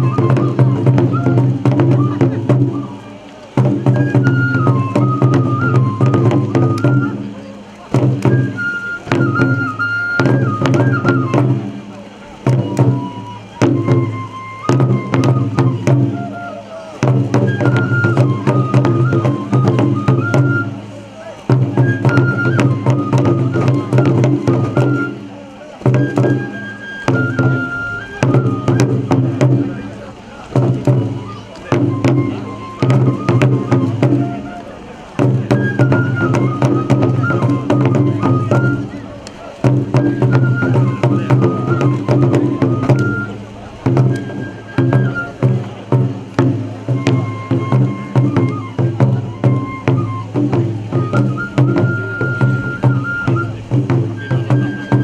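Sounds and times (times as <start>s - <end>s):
high flute melody: 0.0s - 55.0s
taiko drums rapid strokes: 0.0s - 55.0s.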